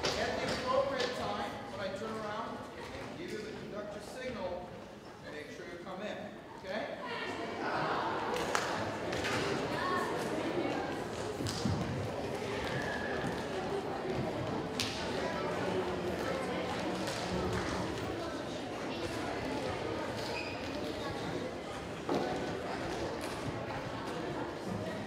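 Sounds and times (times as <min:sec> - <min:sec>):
murmur of many voices: 0:00.0 - 0:25.0.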